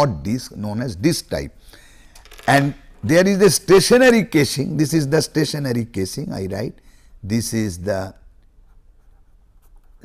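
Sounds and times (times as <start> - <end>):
marker pen scratching paper: 8.6 - 10.0.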